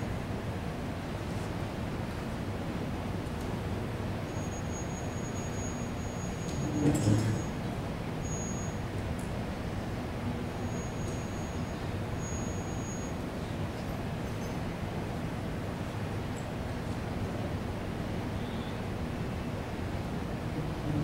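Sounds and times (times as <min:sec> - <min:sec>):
room noise hiss: 0:00.0 - 0:21.0.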